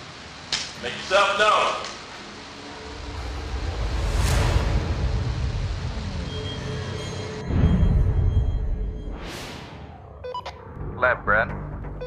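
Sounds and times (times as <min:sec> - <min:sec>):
whoosh sound effect: 0:02.6 - 0:08.4.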